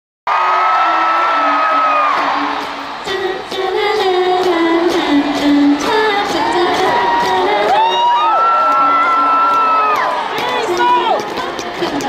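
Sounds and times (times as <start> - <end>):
concert crowd cheering: 0.3 - 11.2.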